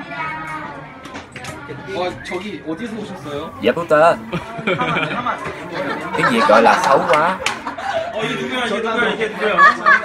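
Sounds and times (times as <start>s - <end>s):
people chattering: 0.8s - 10.0s.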